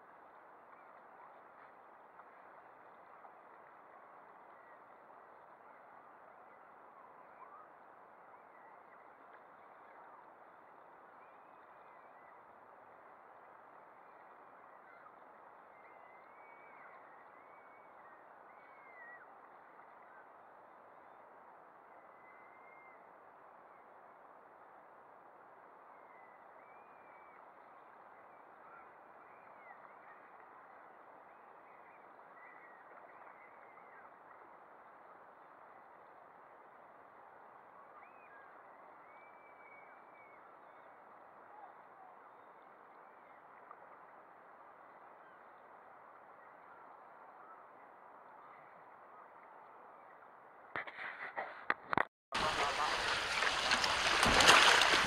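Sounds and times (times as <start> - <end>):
waves: 0.0 - 50.0, 52.4 - 55.0
faint water noise: 0.0 - 50.9, 51.9 - 55.0
rushing wind on microphone: 50.8 - 55.0
distant bird calls: 52.4 - 55.0.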